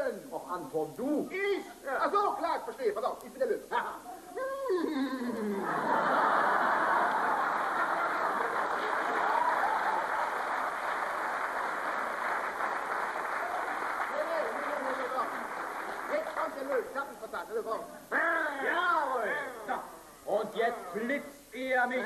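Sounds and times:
audience laughing: 5.4s - 9.9s
audience applauding: 6.6s - 17.0s.

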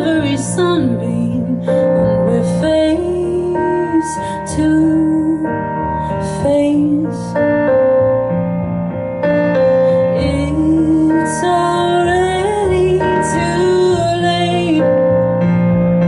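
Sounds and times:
woman singing slow melody: 0.0s - 7.4s, 10.1s - 15.2s
piano chords: 0.0s - 16.0s.

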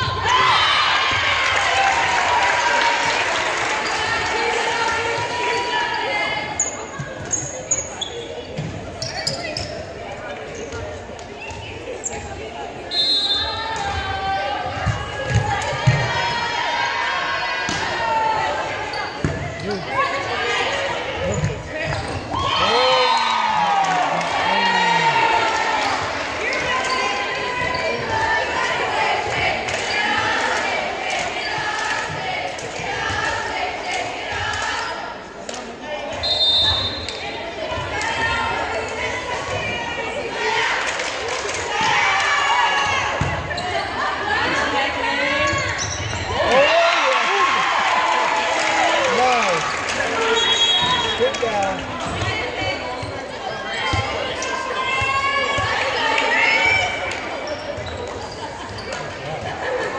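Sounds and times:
people calling out and cheering: 11.3s - 35.2s, 36.0s - 57.8s.

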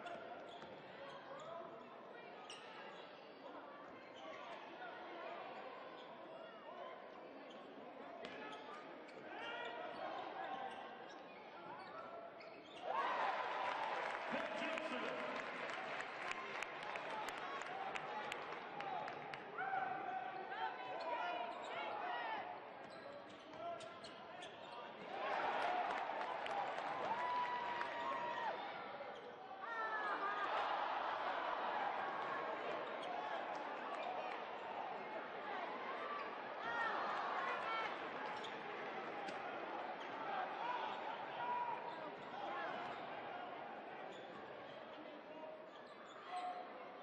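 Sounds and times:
crowd noise and voices: 0.0s - 47.0s.

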